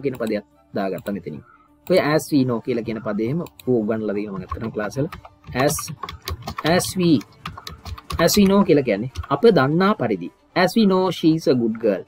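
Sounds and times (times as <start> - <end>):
person speaking: 0.0 - 12.0
keyboard key clicks: 4.4 - 9.4.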